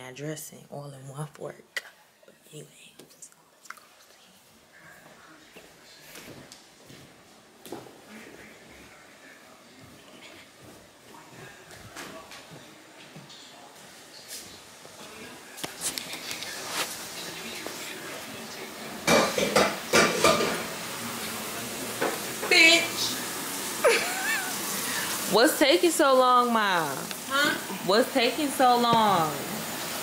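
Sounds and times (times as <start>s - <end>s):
faint voices: 7.9s - 25.4s
dishes and cutlery clattering: 19.0s - 20.7s.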